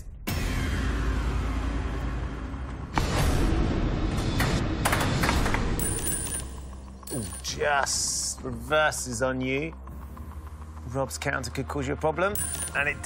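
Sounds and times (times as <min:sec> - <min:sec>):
tense game show music: 0:00.0 - 0:13.0.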